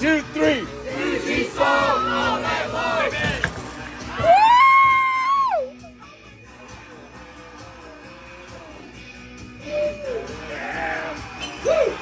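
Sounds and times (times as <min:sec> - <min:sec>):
background music: 0:00.0 - 0:12.0
group whooping: 0:04.1 - 0:05.8, 0:09.6 - 0:12.0.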